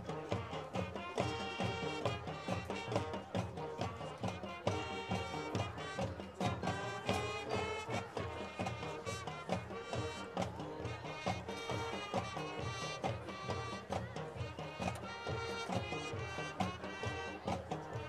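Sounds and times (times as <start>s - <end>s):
marching band brass: 0.0s - 18.0s
marching drum beat: 0.0s - 18.0s.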